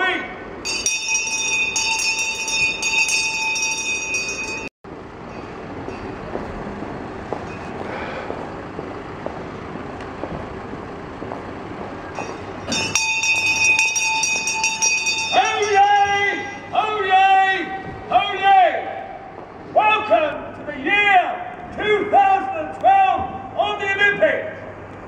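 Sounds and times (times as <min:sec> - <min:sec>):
outdoor background noise: 0:00.0 - 0:25.0
brass handbell ringing: 0:00.6 - 0:04.7, 0:12.2 - 0:16.7.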